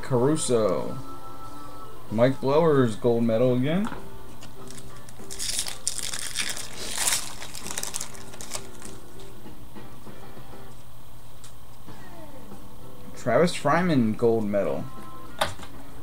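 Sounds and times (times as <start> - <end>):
background music: 0.0 - 11.2, 11.8 - 16.0
card pack wrapper crinkling: 4.6 - 9.0.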